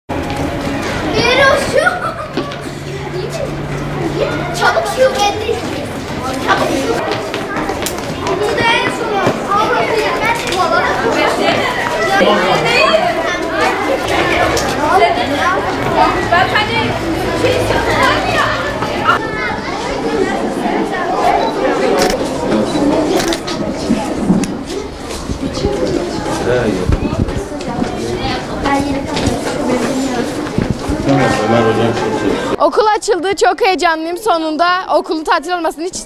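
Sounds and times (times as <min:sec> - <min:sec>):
children chattering and calling out: 0:00.1 - 0:36.0.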